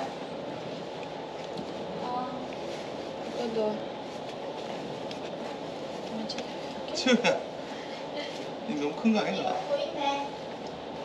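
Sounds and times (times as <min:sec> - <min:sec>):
soft rustling of fabric: 0:00.0 - 0:11.0
steady background rumble: 0:00.0 - 0:11.0.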